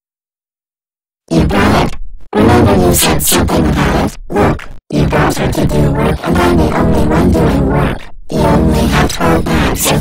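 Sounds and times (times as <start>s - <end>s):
cartoon character voice: 1.3s - 10.0s.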